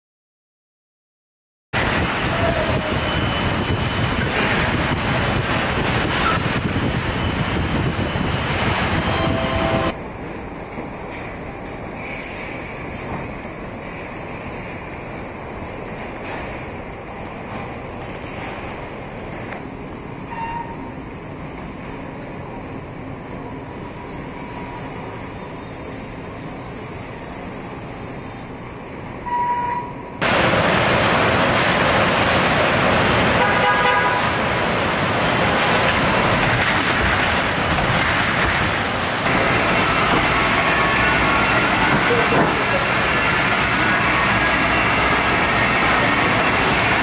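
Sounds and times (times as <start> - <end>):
machinery hum: 2.8 - 10.2
short tones: 8.9 - 10.0
machinery clatter: 30.2 - 40.6.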